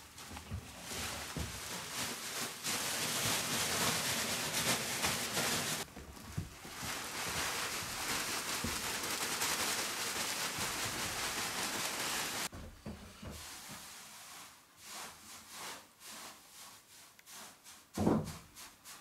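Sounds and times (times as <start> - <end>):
wood shavings pouring onto metal: 0.9 - 5.9, 6.7 - 12.5.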